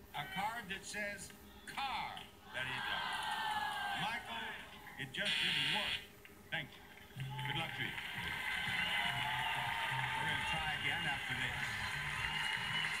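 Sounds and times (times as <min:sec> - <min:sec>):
audience applause: 0:07.1 - 0:13.0
background music: 0:07.1 - 0:13.0.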